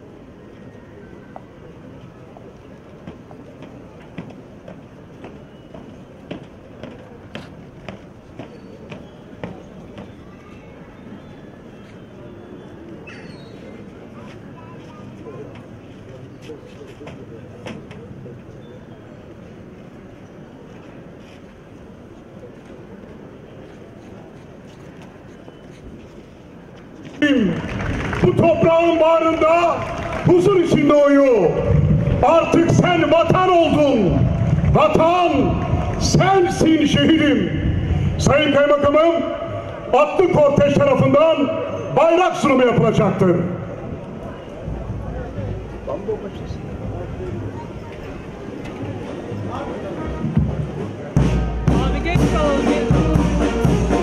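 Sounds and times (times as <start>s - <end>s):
outdoor crowd background: 0.0s - 54.0s
town square murmur: 0.0s - 54.0s
marching footsteps on stone: 2.9s - 10.2s
man's loud voice: 27.2s - 43.7s.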